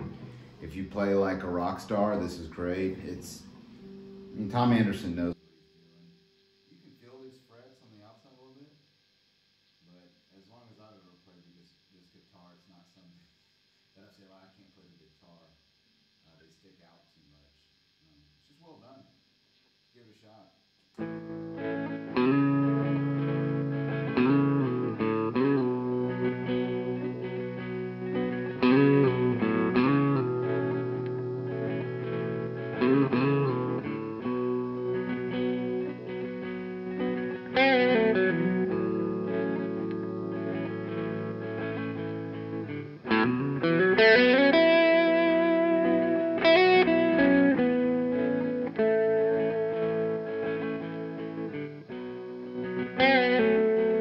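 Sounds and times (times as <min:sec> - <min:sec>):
electric guitar playing: 0:00.0 - 0:06.8, 0:21.0 - 0:54.0.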